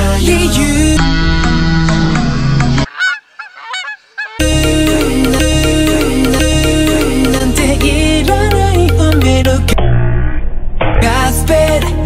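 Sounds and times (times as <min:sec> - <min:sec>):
pop song music: 0:00.0 - 0:02.9, 0:04.4 - 0:09.8, 0:11.0 - 0:12.0.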